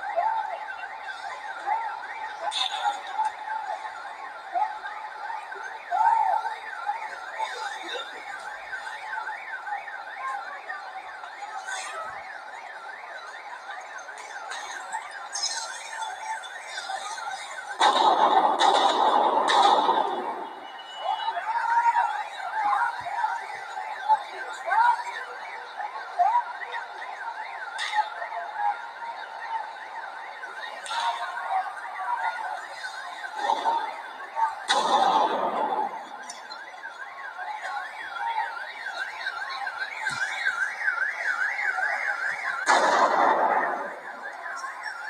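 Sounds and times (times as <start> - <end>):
police siren yelping: 0.0 - 45.0
electronic alarm warbling: 11.2 - 22.5
sharp crack: 17.7 - 20.7, 34.7 - 36.4, 42.5 - 44.3.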